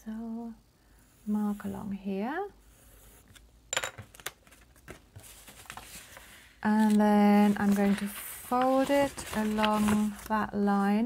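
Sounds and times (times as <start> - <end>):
paper and card handled: 4.1 - 10.5.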